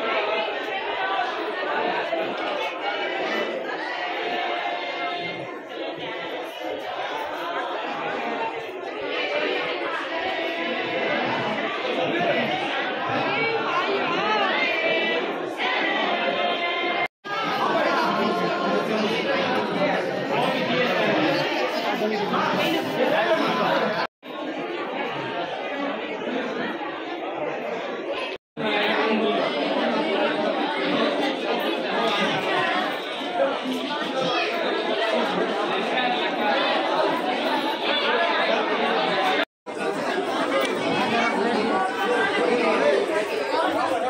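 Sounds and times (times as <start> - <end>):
crowd chatter in a hall: 0.0 - 44.0.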